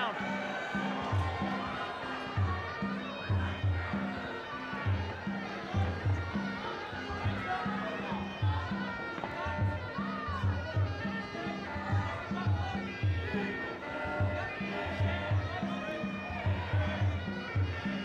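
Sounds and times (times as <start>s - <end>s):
reedy pipe melody: 0.0s - 18.0s.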